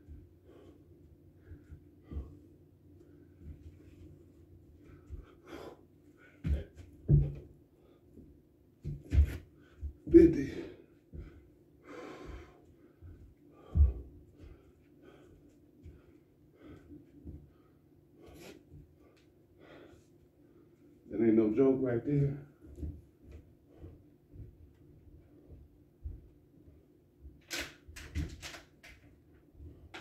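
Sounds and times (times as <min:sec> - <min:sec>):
man breathing hard: 0:00.1 - 0:04.0, 0:04.8 - 0:06.8, 0:09.4 - 0:20.9
hands and feet thumping on mat: 0:06.4 - 0:07.5, 0:08.8 - 0:10.3.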